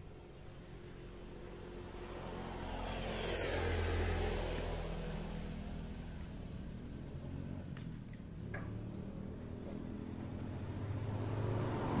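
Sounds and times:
vehicle driving past: 0.0s - 12.0s.

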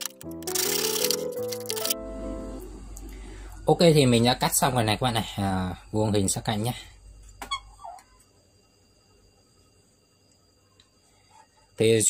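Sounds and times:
faint high-pitched whine: 2.0s - 12.0s.

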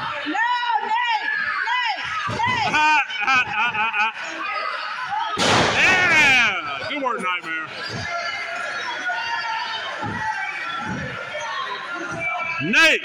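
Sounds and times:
crowd chatter: 0.0s - 13.0s
crowd yelling: 0.0s - 13.0s.

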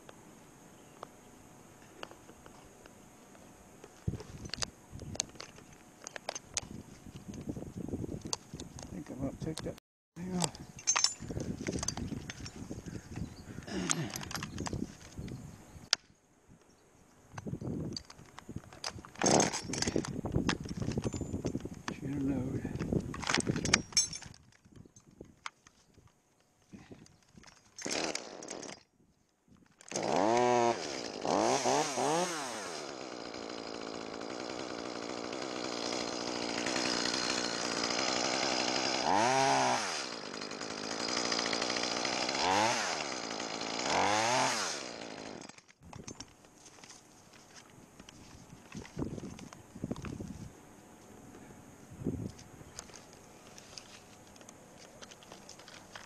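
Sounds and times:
chainsaw revving and cutting wood: 19.2s - 20.0s, 27.8s - 28.9s, 29.8s - 45.8s.

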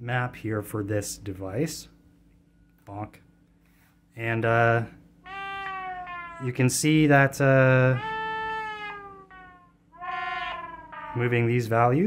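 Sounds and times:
synthesizer notes falling in pitch: 5.3s - 11.8s.

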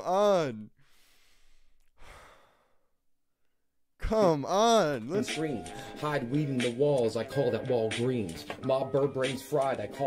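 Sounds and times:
man sighing: 0.0s - 2.9s.

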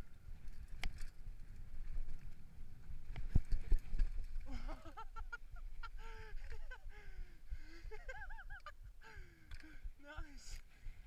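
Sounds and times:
bike clattering over rough ground: 0.2s - 5.3s.

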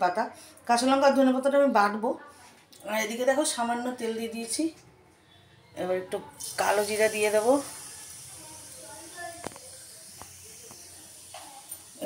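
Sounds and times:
hot oil sizzling: 6.4s - 12.0s.

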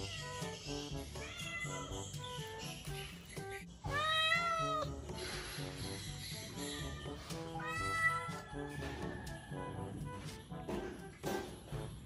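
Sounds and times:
background music: 0.0s - 12.0s
kitten meowing: 3.9s - 4.9s, 7.6s - 8.4s.

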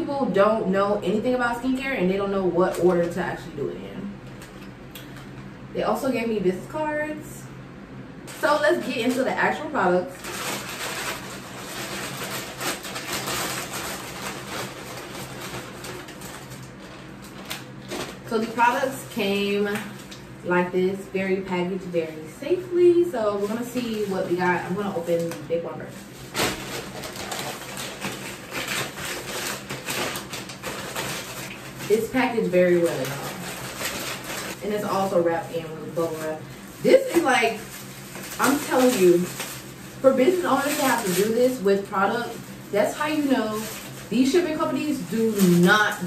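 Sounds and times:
plastic mailer and bubble wrap crinkling: 0.0s - 5.5s, 8.2s - 46.0s.

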